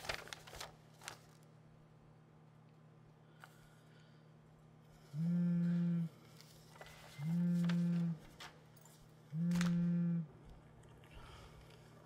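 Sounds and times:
mobile phone vibrating buzzes: 5.1 - 6.2, 7.2 - 8.3, 9.3 - 10.4.

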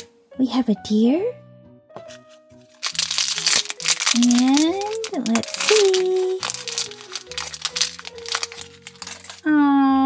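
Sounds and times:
light background music: 0.0 - 10.0
plastic wrapper crumpling: 2.1 - 9.4.

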